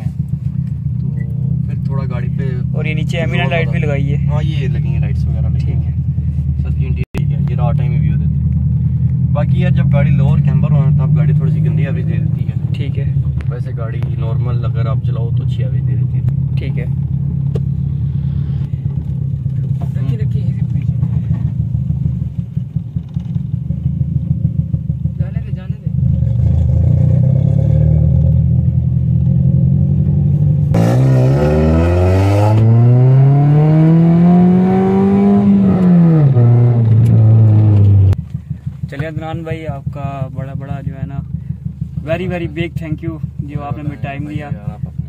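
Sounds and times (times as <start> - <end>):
car engine droning inside cabin: 0.0 - 45.0.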